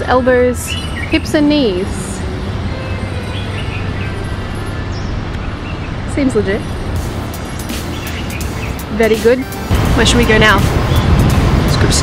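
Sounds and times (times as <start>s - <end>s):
low outdoor rumble: 8.8s - 12.0s.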